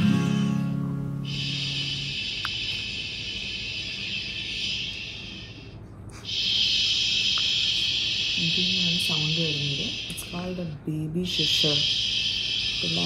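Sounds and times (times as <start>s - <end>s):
sleep soother shh hiss: 1.1s - 13.0s.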